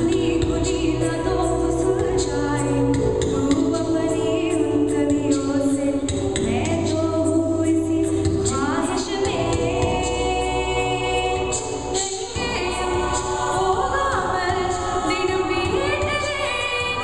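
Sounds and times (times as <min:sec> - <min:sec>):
a cappella group singing: 0:00.0 - 0:17.0.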